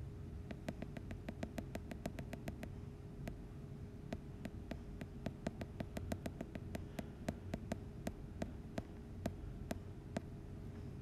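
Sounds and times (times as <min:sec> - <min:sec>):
faint steady hum: 0:00.0 - 0:11.0
small rapid clicks: 0:00.4 - 0:03.4.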